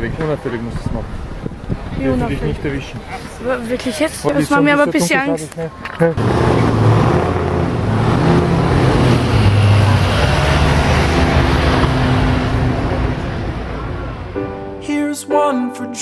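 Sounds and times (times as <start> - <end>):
road noise: 0.0 - 14.9
vehicle engine droning: 5.9 - 14.5.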